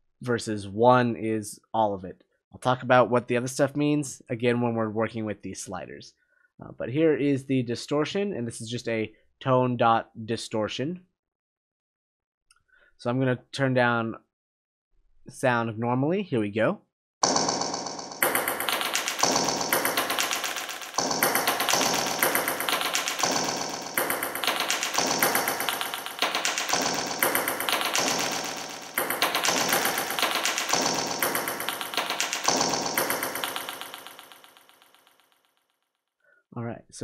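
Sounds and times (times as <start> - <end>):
pitched percussive music loop: 17.2 - 35.2.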